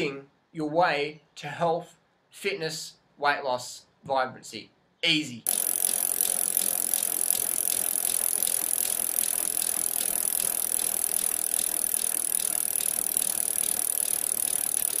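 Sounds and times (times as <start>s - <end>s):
bicycle wheel ticking: 5.5s - 15.0s.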